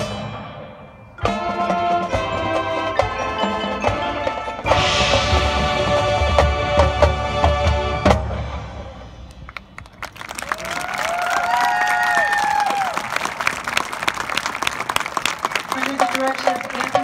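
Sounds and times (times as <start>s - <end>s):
marching band chord: 0.0s - 9.5s
crowd applause and cheering: 9.2s - 17.0s
crowd whooping: 10.0s - 15.7s.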